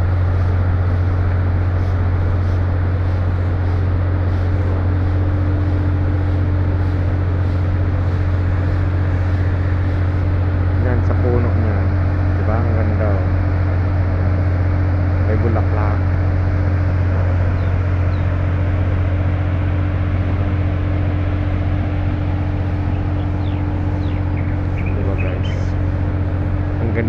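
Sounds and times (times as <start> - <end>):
low machine hum: 0.0 - 27.0.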